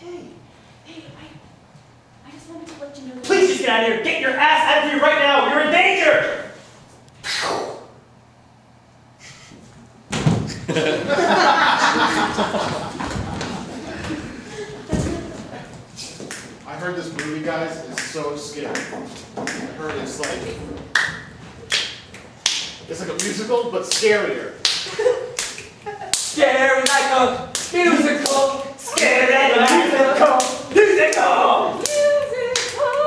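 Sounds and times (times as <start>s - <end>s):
heavy thud on stage floor: 10.1s - 10.6s.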